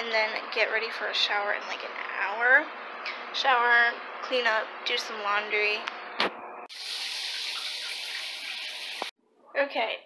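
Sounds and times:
shower spraying on tiles: 6.7 - 9.1.

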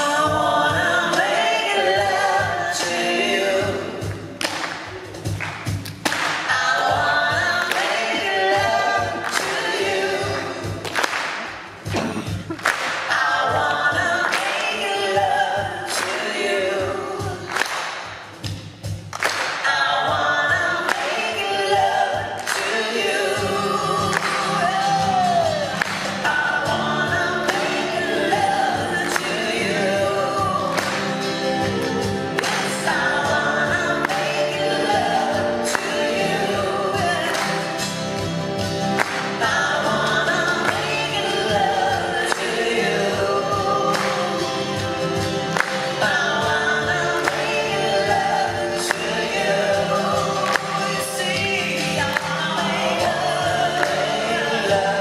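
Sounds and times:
voices singing in harmony: 0.0 - 5.3, 6.1 - 18.0, 19.3 - 55.0
acoustic guitar: 0.0 - 55.0
steady percussive beat: 0.0 - 55.0.

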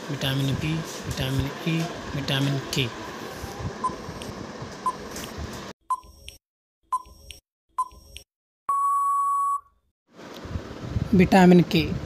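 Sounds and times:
long electronic beep: 8.7 - 9.7.

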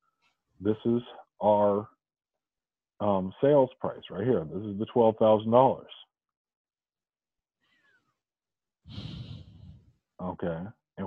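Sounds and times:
person sighing: 8.9 - 9.8.

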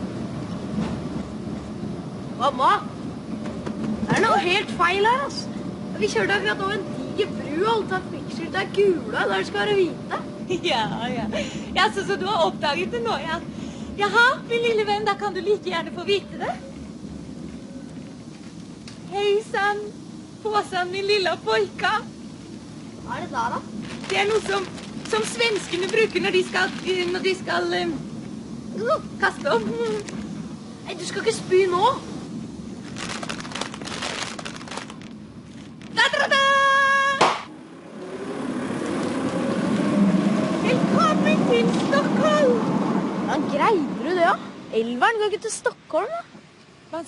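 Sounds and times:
bus interior rumble and hiss: 0.0 - 47.0
city traffic: 0.0 - 47.0
paper bag popping: 23.8 - 27.2, 32.8 - 36.0.

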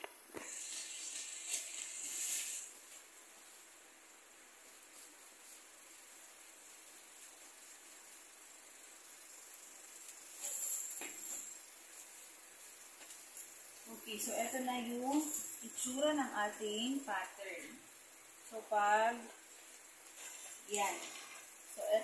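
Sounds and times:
paper crackling and rustling: 0.5 - 3.1.

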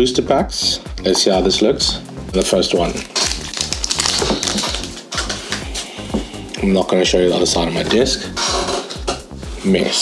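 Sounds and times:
background music with steady beat: 0.0 - 10.0
foil wrapper crinkling: 2.4 - 5.6.

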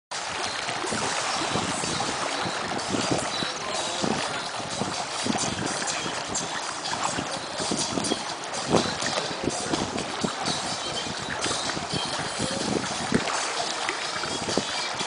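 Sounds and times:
pool water splashing: 0.1 - 15.0.

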